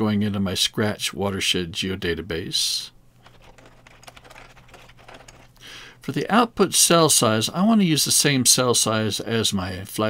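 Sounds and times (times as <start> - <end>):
keyboard keys clicking: 3.2 - 5.6.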